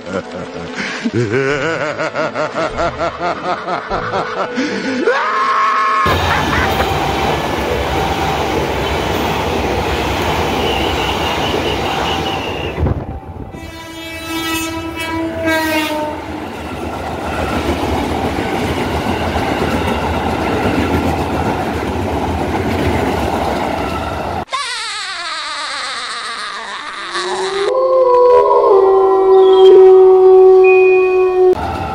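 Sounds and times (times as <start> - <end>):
train horn: 6.1 - 16.4, 29.4 - 31.6
trains rumbling on rails: 6.1 - 24.5, 31.3 - 31.9.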